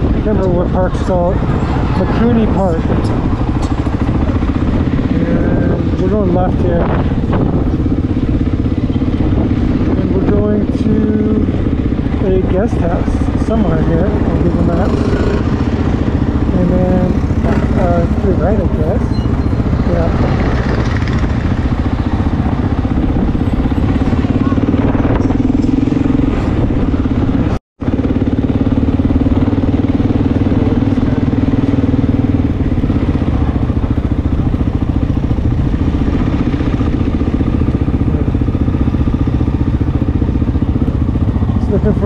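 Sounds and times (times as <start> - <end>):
motorcycle engine running: 0.0 - 42.0.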